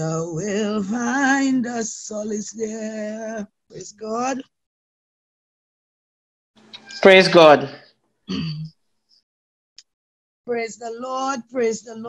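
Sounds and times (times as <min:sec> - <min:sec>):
person clearing throat: 0:08.3 - 0:08.7.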